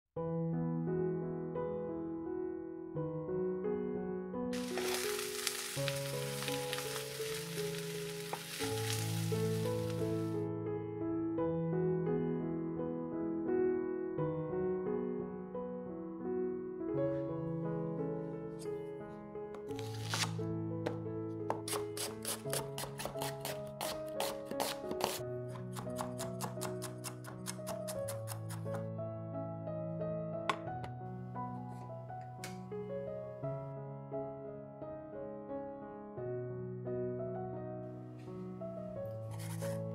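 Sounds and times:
soft electric piano music: 0.2s - 21.8s, 22.8s - 39.9s
food sizzling in a frying pan: 4.6s - 10.4s
knife chopping on wooden board: 19.7s - 28.8s.

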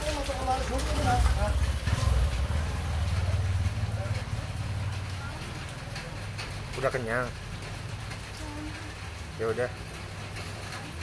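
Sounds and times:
vehicle engine idling: 0.4s - 8.2s.

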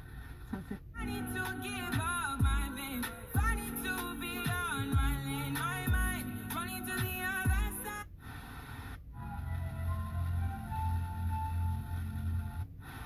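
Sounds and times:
music with held notes and bass: 1.0s - 8.0s, 9.2s - 12.6s
car radio playing song: 1.0s - 13.0s.

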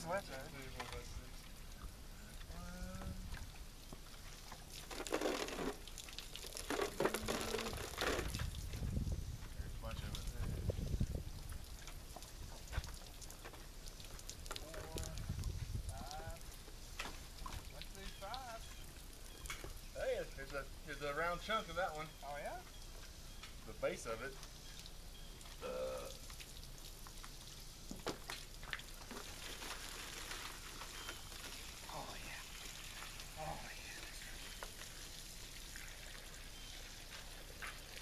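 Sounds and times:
water pouring and splashing: 0.0s - 21.8s, 22.9s - 38.0s.

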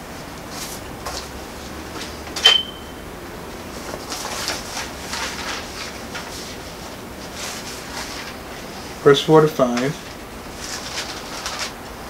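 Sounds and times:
book pages being turned: 3.7s - 8.7s, 9.6s - 12.0s.

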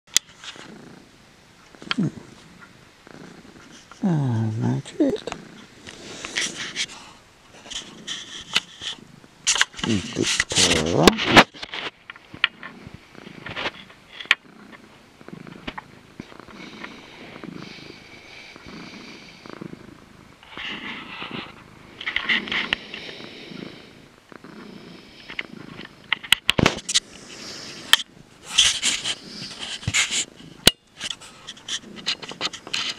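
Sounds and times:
cat purring: 0.3s - 32.9s
airy breathy sound: 5.8s - 7.3s, 20.5s - 25.8s.

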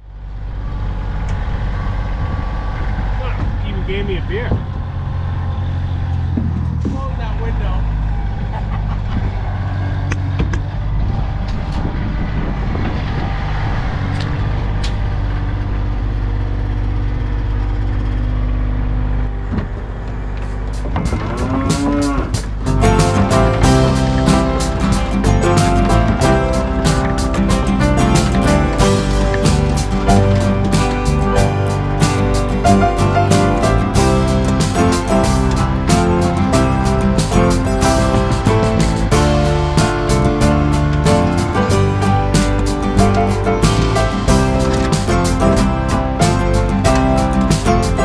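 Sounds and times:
tractor diesel engine humming: 0.0s - 48.0s.

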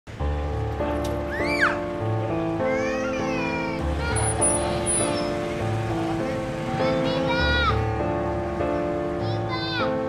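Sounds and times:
child wailing: 1.3s - 1.8s, 2.6s - 4.4s, 9.2s - 9.9s.

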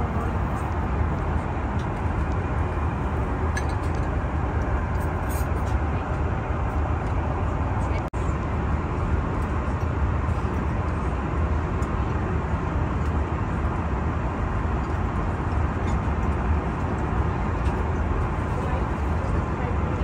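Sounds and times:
aircraft cabin engine rumble: 0.0s - 20.0s.

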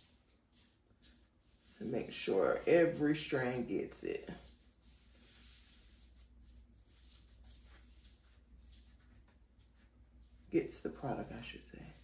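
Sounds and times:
gloved hand rustling hair: 0.0s - 12.0s.

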